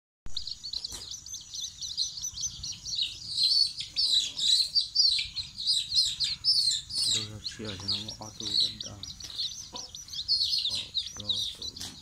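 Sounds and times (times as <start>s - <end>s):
chicks peeping: 0.3s - 12.0s.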